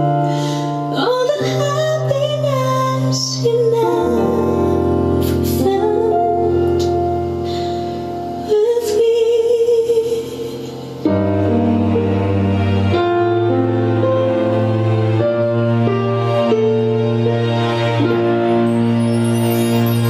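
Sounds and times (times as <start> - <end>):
woman singing a slow ballad: 0.0 - 11.2
piano chords: 0.0 - 20.0.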